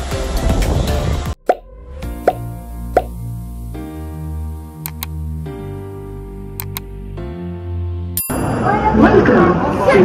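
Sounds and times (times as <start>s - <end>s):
soft synth keyboard music: 1.3s - 8.3s
pop sound effects: 1.4s - 3.2s.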